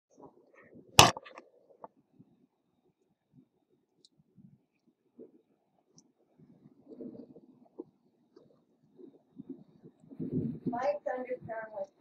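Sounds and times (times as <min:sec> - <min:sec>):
sharp knock: 0:01.0 - 0:01.2.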